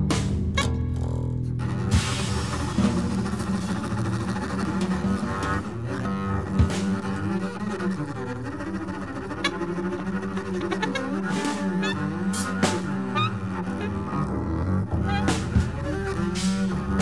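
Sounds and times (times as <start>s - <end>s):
bowed double bass: 0.0s - 17.0s
cymbal and drum strikes: 1.9s - 4.1s.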